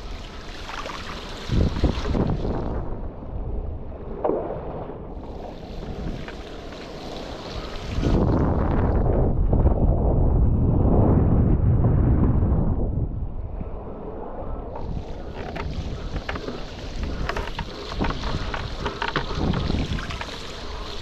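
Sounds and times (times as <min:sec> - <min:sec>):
water splashing and hissing: 0:00.0 - 0:02.7, 0:05.1 - 0:09.0, 0:14.8 - 0:21.0
wind buffeting microphone: 0:01.3 - 0:21.0.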